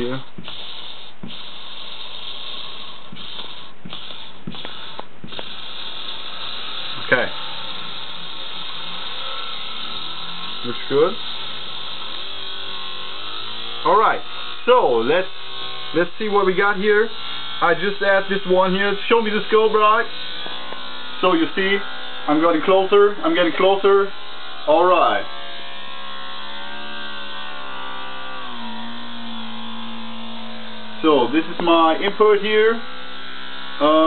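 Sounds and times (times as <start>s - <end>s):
magnet motor buzzing: 0.0s - 34.0s.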